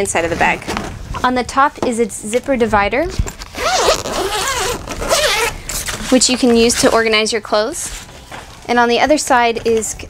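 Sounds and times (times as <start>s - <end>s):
zipper pulled open: 3.2s - 7.0s.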